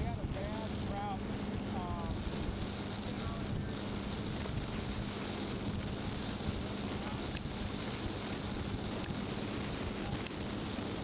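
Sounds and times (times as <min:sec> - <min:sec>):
motorboat low rumble: 0:00.0 - 0:11.0
wind buffeting microphone: 0:00.0 - 0:11.0.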